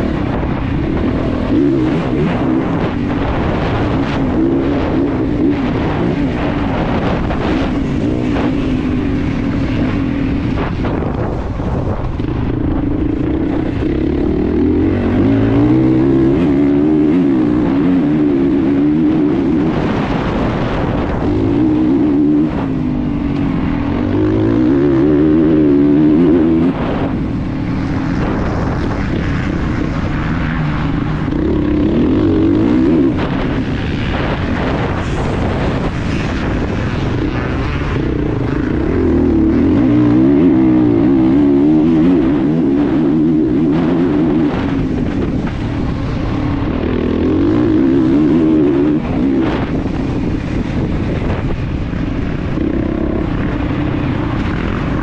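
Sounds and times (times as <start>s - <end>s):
motorcycle engine revving: 0.0s - 55.0s.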